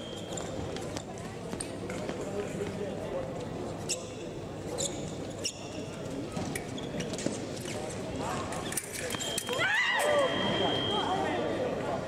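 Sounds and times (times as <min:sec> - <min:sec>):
scoring apparatus high beep: 0:09.2 - 0:11.2.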